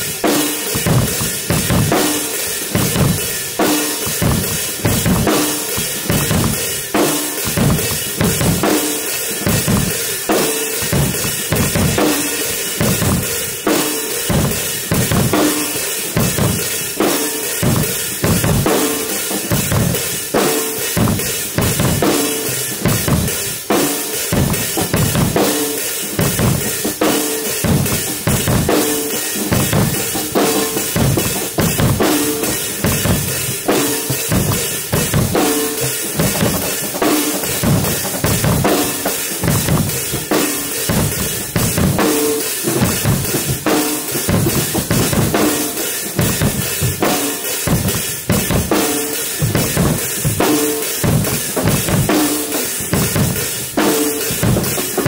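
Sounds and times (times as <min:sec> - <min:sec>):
drum kits playing rock beat: 0:00.0 - 0:55.0.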